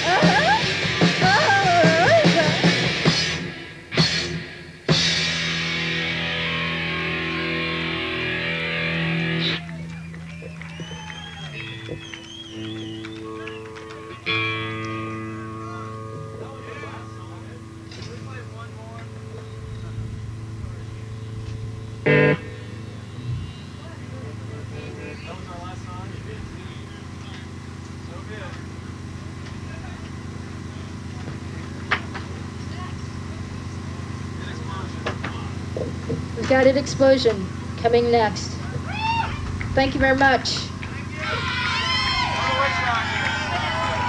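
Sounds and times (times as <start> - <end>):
electric guitar chords ringing: 0.0 - 44.0
low amplifier hum: 0.0 - 44.0.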